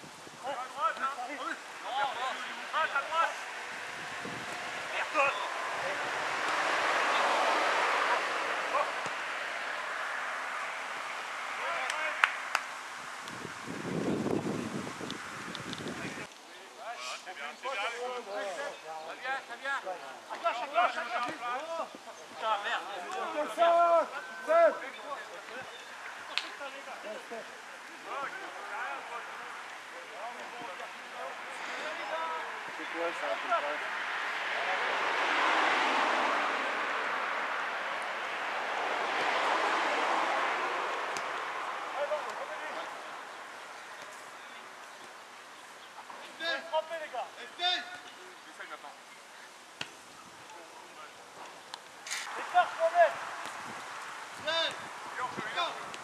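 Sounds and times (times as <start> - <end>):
outdoor background noise: 0.0 - 56.0
wind buffeting microphone: 3.6 - 6.4, 12.9 - 16.3, 53.5 - 56.0.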